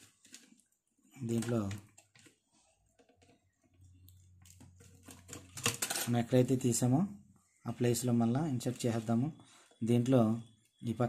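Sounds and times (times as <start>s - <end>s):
clicks and metallic clinks of wires: 0.0s - 6.5s
man talking: 1.2s - 1.9s, 6.1s - 11.0s.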